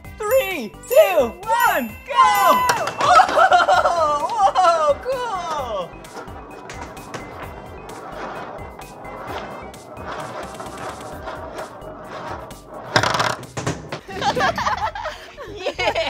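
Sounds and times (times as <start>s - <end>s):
light background music: 0.0s - 16.0s
small balls rolling and rattling: 1.9s - 14.9s.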